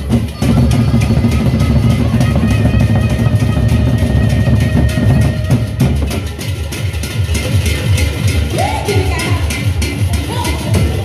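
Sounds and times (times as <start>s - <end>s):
barrel drums beaten fast: 0.0s - 11.0s.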